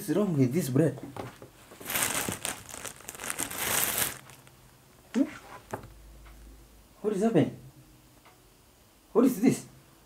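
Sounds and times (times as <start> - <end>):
plastic bag crinkling: 1.4 - 5.8.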